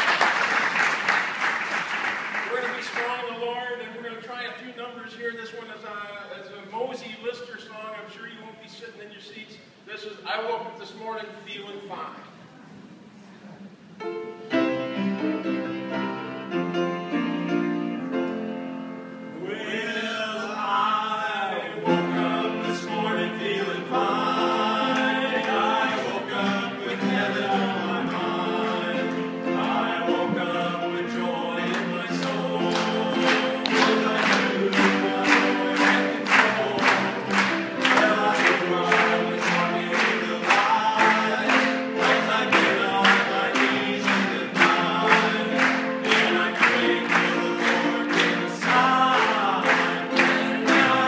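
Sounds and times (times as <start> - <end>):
piano chords: 13.8 - 51.0
men singing gospel in harmony: 19.3 - 51.0
hand claps on the beat: 31.7 - 51.0.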